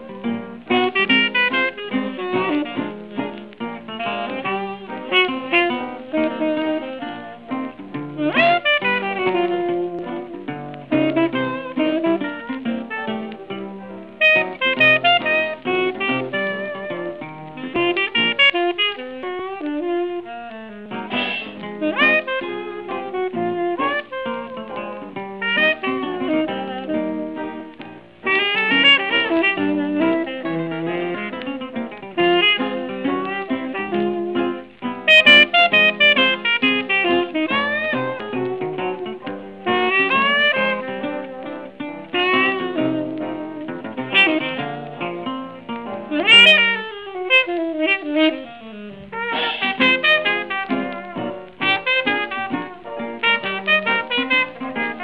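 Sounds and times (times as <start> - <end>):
plucked guitar accompaniment: 0.0 - 55.0
saxophone solo: 0.0 - 55.0.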